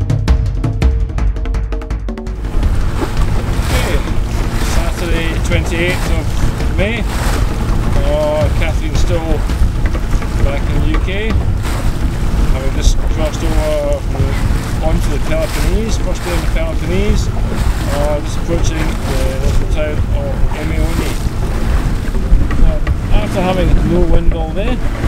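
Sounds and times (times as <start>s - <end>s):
water washing past boat hull: 0.0s - 25.0s
wind buffeting microphone: 2.4s - 25.0s.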